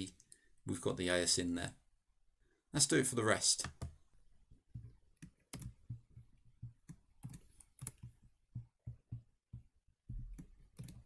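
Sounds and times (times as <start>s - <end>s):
keyboard and mouse clicking: 4.7s - 9.6s, 10.2s - 11.0s.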